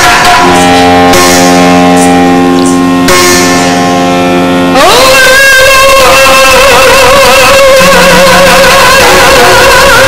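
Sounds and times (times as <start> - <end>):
person singing a long note: 4.7 - 10.0.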